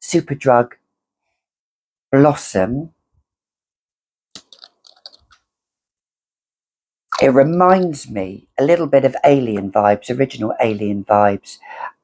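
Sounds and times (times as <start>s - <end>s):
small bottle cap clicking: 4.4s - 5.4s.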